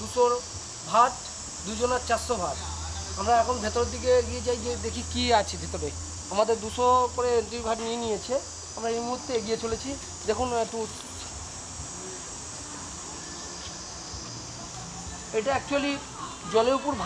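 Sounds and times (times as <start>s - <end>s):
man talking: 0.0s - 11.3s
high-pitched insect drone: 0.0s - 17.0s.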